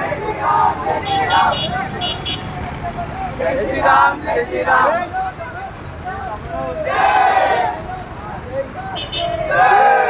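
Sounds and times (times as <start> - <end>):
motorcycle engines running: 0.0 - 9.7
men calling out: 0.0 - 10.0
street traffic: 0.0 - 10.0.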